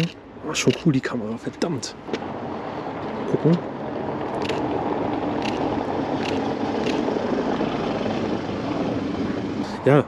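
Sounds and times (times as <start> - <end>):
distant traffic rush: 0.0 - 10.0.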